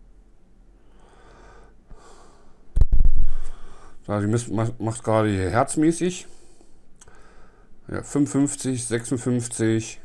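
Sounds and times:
man breathing faintly: 0.8s - 4.1s, 6.2s - 7.8s
breath hitting microphone: 0.9s - 4.0s.

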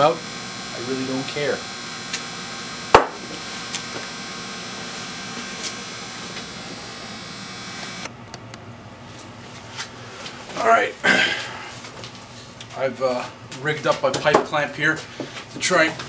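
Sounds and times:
sharp knock on workbench: 2.9s - 3.3s.

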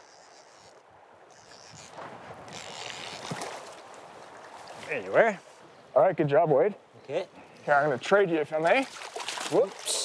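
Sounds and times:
fish splashing in shallow water: 3.1s - 4.9s, 8.7s - 10.0s.

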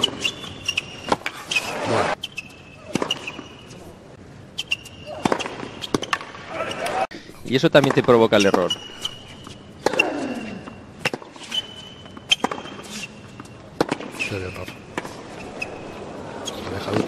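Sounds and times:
racket hitting tennis ball: 0.0s - 2.2s, 2.8s - 3.7s, 4.6s - 7.0s, 7.8s - 10.1s, 11.0s - 15.4s
shoes squeaking on court: 0.0s - 7.0s, 7.8s - 17.0s.

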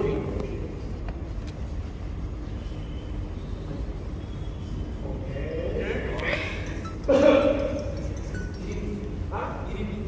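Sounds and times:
faint steady hum: 0.0s - 10.0s
low rumble in large hall: 0.0s - 10.0s.

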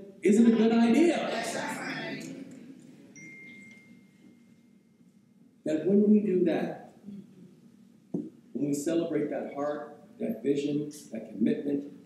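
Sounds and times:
voice: 0.0s - 2.7s, 5.7s - 7.2s, 8.6s - 11.9s
high chime-like ringing tone: 3.2s - 5.0s.

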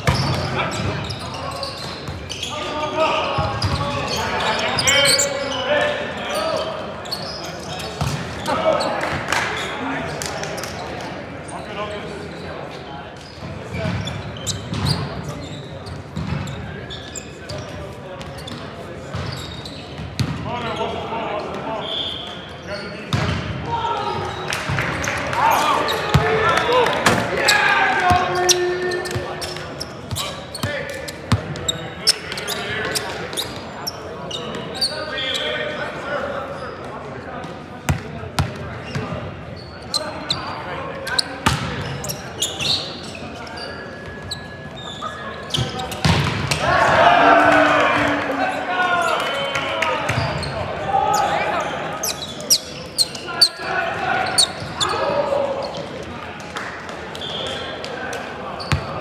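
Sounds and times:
players shouting: 23.7s - 29.5s, 46.5s - 52.1s, 53.1s - 55.9s.

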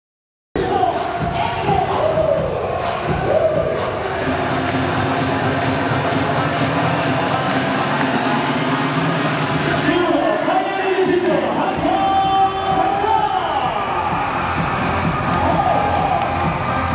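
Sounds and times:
cheer music over sound system: 0.6s - 16.9s
crowd cheering and chanting: 0.6s - 16.9s.

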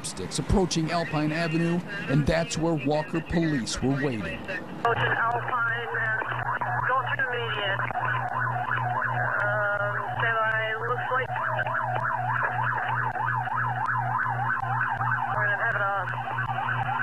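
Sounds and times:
low pulsing radio hum: 0.0s - 17.0s
police siren yelping: 0.4s - 17.0s.

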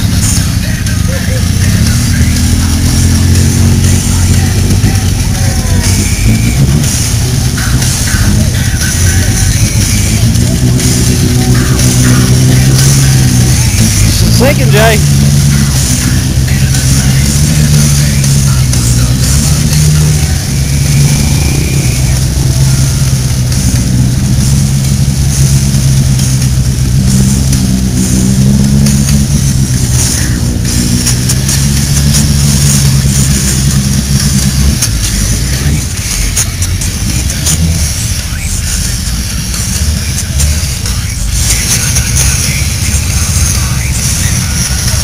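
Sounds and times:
vehicle engine idling: 0.0s - 45.0s.

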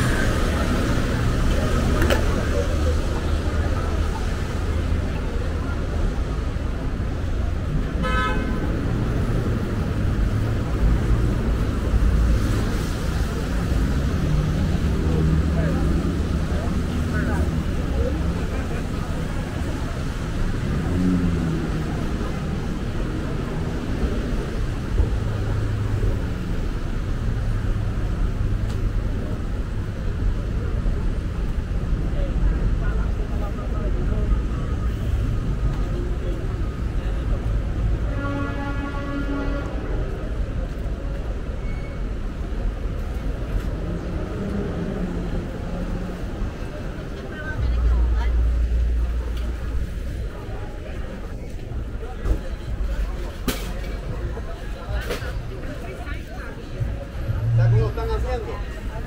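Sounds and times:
low rumble of passing vehicles: 0.0s - 59.0s
car horn toot: 8.0s - 8.6s.

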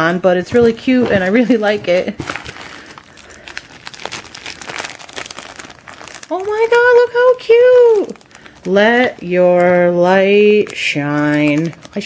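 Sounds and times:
packaging crinkling and rustling: 0.5s - 12.0s.

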